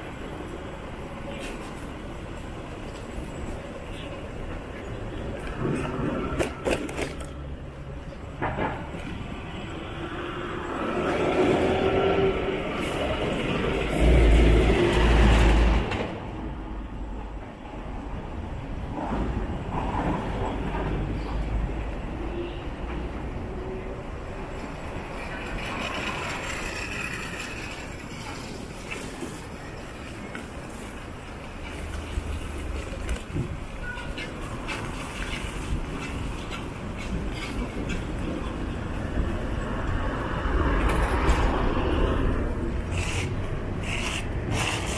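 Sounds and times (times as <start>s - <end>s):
road traffic noise: 0.0s - 44.9s.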